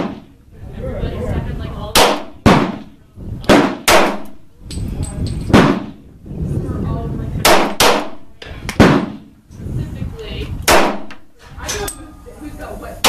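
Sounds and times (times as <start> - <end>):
pistol shots: 2.0 - 4.4, 5.5 - 6.0, 7.4 - 8.2, 8.8 - 9.3, 10.7 - 11.2.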